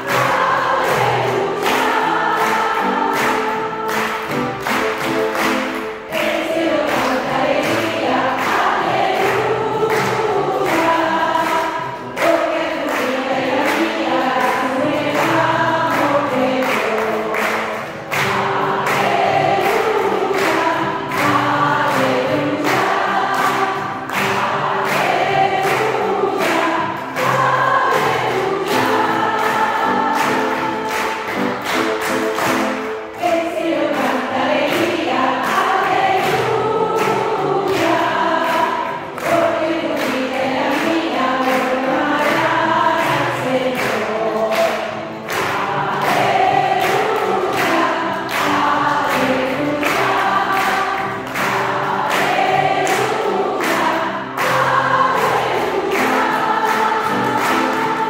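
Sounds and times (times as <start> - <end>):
keyboard accompaniment: 0.0 - 58.0
women singing a hymn: 0.0 - 58.0.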